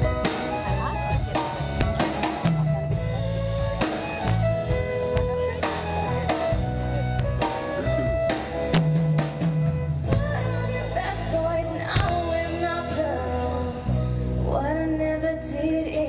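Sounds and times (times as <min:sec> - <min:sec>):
drum kit steady beat: 0:00.0 - 0:10.4
bass: 0:00.0 - 0:16.0
guitars: 0:00.0 - 0:16.0.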